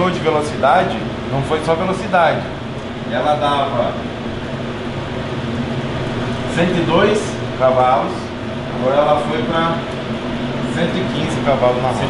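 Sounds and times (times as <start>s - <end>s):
electric fan whirring: 0.0s - 12.0s.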